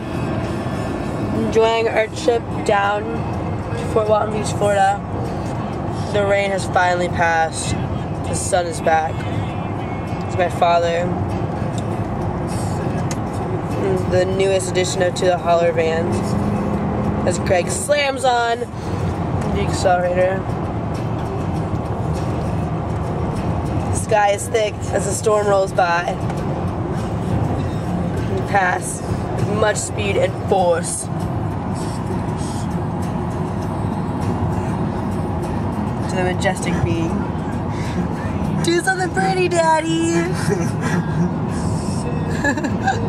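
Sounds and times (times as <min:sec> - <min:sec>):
car cabin road and engine noise: 0:00.0 - 0:43.0.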